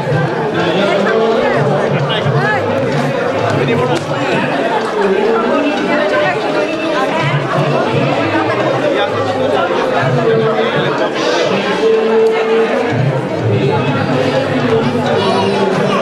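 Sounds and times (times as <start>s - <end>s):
crowd chatter in a large hall: 0.0s - 16.0s.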